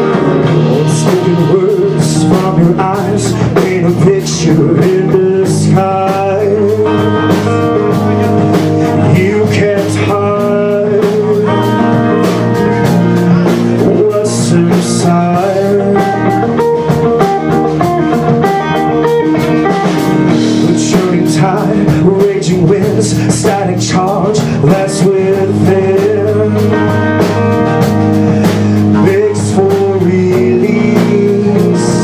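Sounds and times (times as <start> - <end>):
bass guitar: 0.0 - 32.0
drum kit cymbal beat: 0.0 - 32.0
electric guitar melody: 0.0 - 32.0.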